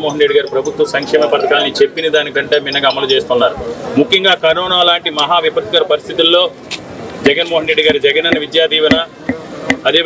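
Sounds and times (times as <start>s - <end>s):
person talking: 0.0s - 3.2s.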